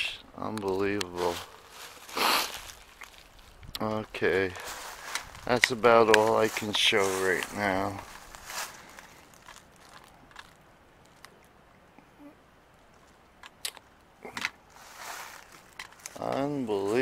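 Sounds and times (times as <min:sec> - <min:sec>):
twigs snapping: 0:00.5 - 0:03.9, 0:07.3 - 0:11.6, 0:12.9 - 0:14.6, 0:15.3 - 0:16.4
footsteps on dry leaves: 0:00.7 - 0:11.3, 0:14.7 - 0:17.0.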